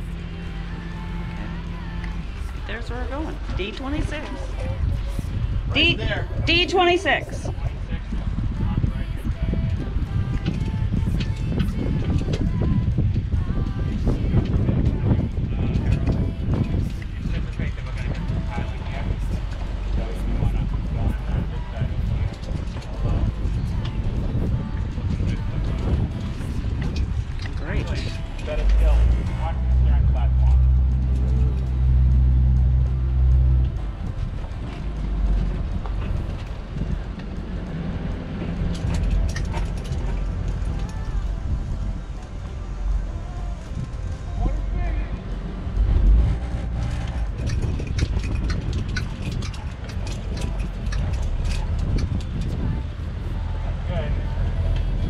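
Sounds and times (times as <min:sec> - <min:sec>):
boat engine low drone: 0:00.0 - 0:55.0.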